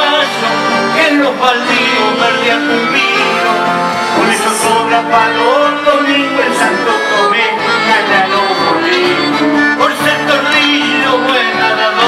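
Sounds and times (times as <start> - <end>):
acoustic guitar: 0.0 - 12.0
live folk music: 0.0 - 12.0.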